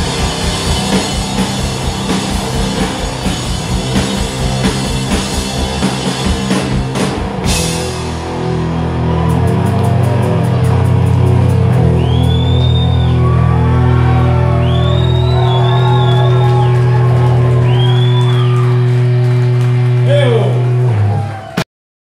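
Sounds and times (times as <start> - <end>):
bass and guitars holding chord: 0.0 - 21.6.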